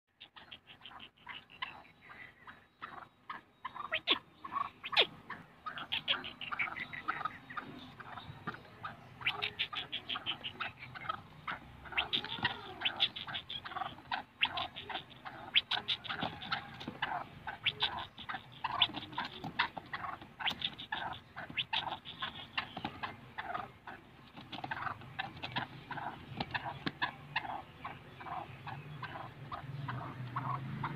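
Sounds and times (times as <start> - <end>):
francolin calling: 0.1 - 24.1.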